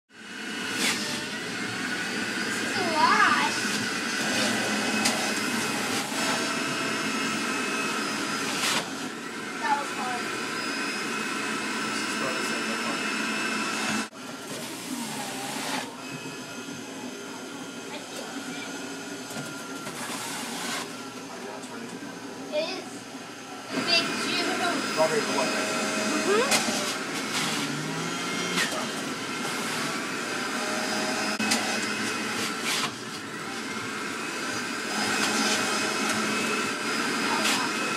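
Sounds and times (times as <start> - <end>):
juicer motor whining: 0.2 - 37.9
people talking: 2.6 - 3.6, 9.6 - 10.3, 12.1 - 13.1, 17.9 - 18.8, 23.7 - 26.6, 37.2 - 37.9.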